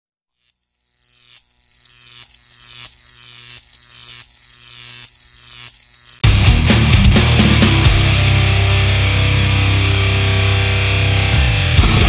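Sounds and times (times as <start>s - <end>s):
buzzing electronic drone: 0.3s - 12.0s.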